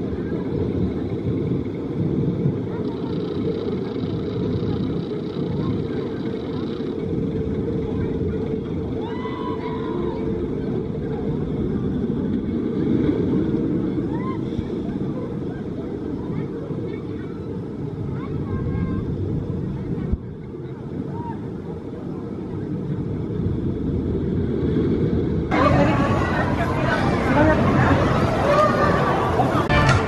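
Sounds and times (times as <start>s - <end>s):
riders' voices: 0.0s - 22.9s, 25.5s - 30.0s
roller coaster rumbling on track: 0.0s - 30.0s.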